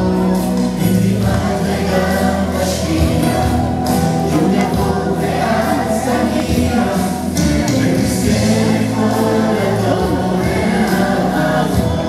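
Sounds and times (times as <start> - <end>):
children's choir singing: 0.0 - 12.0
instrumental backing track: 0.0 - 12.0.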